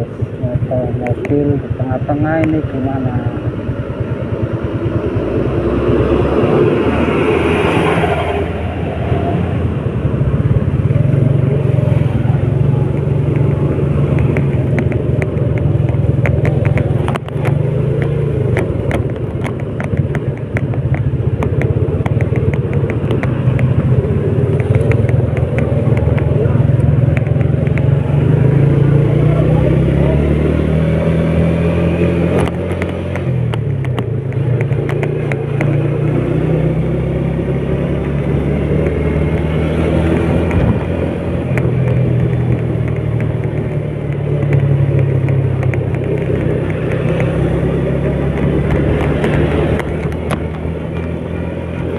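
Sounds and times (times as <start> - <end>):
motorcycle engine running: 0.0 - 7.6, 8.4 - 51.9.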